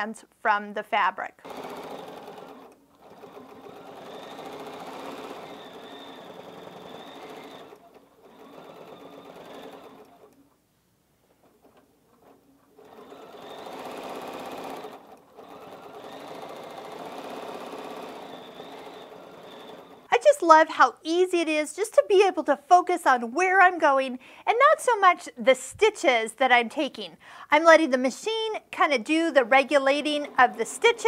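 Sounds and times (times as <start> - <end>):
sewing machine stitching: 1.4 - 10.5, 11.4 - 20.1, 29.5 - 31.0.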